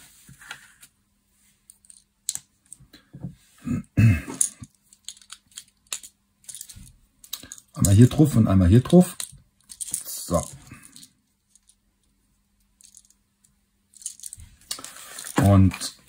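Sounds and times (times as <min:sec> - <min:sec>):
plastic bricks clicking and rattling: 0:04.4 - 0:11.8, 0:12.8 - 0:13.2, 0:13.9 - 0:15.5.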